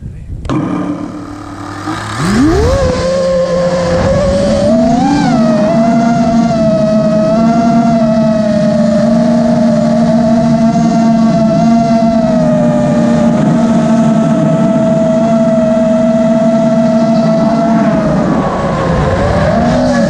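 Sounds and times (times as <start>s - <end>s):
quadcopter motors whining: 0.0s - 20.0s.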